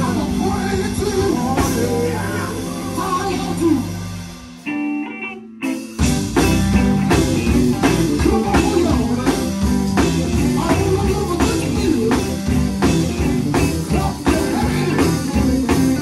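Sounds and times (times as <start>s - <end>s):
steady drum beat: 0.0s - 4.6s, 5.6s - 16.0s
live gospel band with singers: 0.0s - 16.0s.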